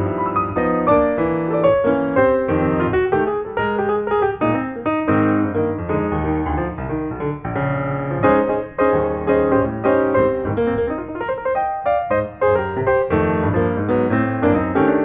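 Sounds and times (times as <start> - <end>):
piano music: 0.0 - 15.0.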